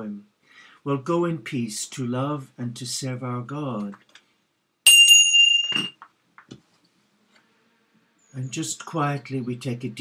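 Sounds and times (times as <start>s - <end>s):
small bell ringing: 4.9s - 6.0s.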